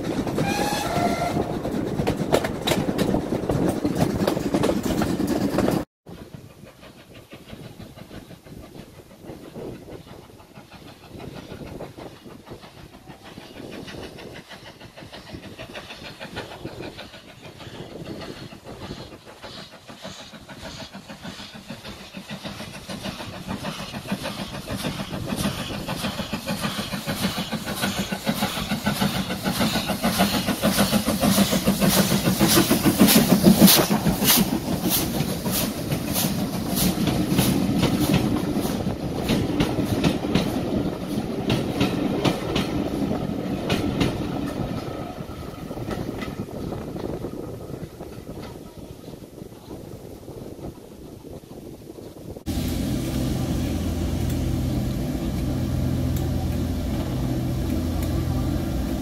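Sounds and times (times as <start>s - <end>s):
railway carriage rumbling: 0.0s - 59.0s
steam locomotive exhaust beats: 0.0s - 59.0s
train whistle: 0.4s - 1.6s.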